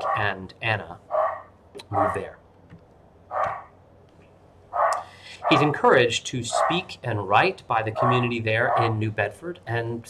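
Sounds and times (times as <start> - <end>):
dog barking: 0.0 - 0.3, 1.1 - 2.2, 3.3 - 3.8, 4.8 - 5.8, 6.5 - 6.9, 8.0 - 9.0.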